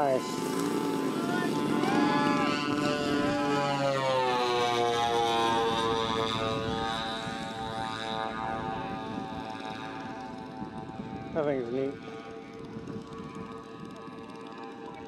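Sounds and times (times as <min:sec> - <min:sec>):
model plane engines droning: 0:00.0 - 0:15.0.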